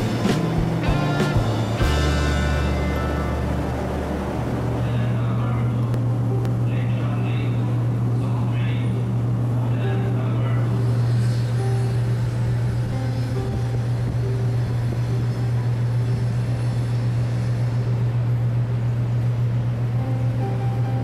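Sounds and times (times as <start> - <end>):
low machinery hum: 0.0 - 21.0
faint voices: 4.3 - 13.0.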